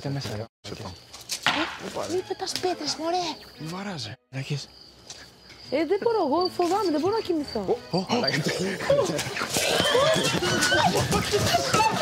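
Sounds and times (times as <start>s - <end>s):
crickets chirping: 0.0s - 12.0s
people talking: 5.7s - 9.3s.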